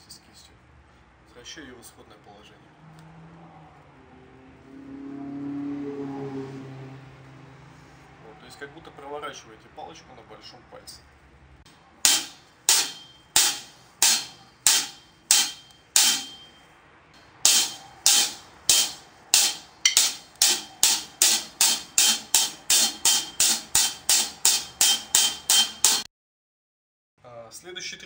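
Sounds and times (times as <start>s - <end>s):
drumstick strokes on a drum: 17.5s - 26.1s.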